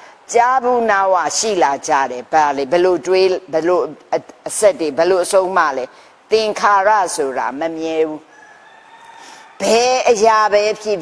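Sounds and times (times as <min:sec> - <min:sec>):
woman speaking: 0:00.3 - 0:08.3, 0:09.6 - 0:11.0.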